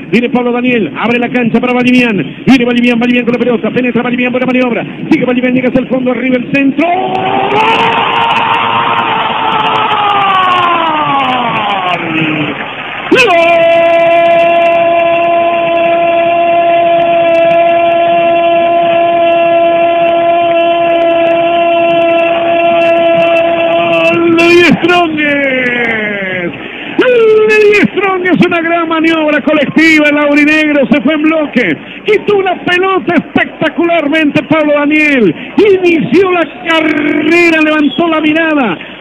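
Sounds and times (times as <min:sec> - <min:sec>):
commentator shouting goal cry: 0:13.1 - 0:38.8.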